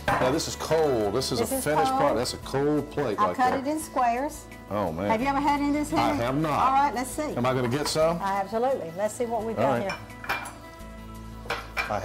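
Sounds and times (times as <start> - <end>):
quiet background music: 0.0 - 12.0
utensils clinking on dishes: 9.6 - 10.6.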